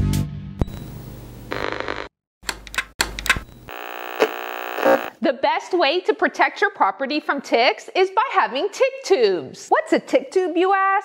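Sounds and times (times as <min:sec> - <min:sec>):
buzzing electronic tone: 0:01.5 - 0:02.1, 0:03.6 - 0:05.1
glitchy electronic noise: 0:03.7 - 0:05.1.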